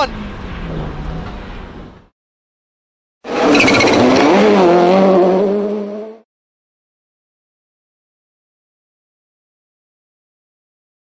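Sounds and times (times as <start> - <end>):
car engine sound effect: 3.2 - 6.2
tyre squeal screech: 3.3 - 4.2.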